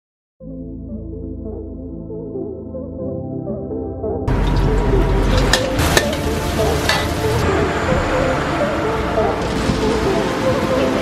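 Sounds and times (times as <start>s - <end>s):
noodles sizzling in a wok: 5.4s - 7.4s.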